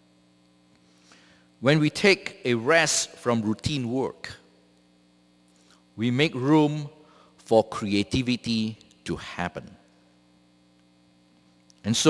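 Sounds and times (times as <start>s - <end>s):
electrical mains hum: 0.0s - 12.0s
man talking: 1.6s - 4.4s, 6.0s - 9.8s.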